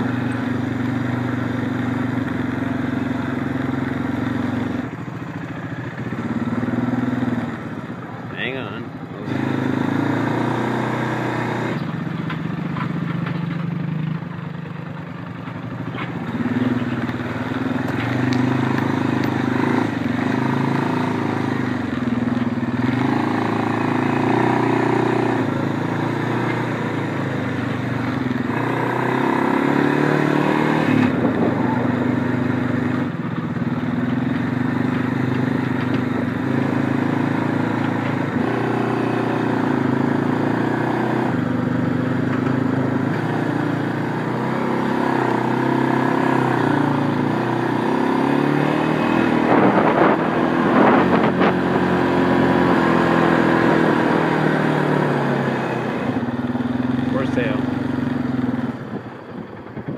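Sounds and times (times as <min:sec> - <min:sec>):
atv engine running: 0:00.0 - 0:59.9.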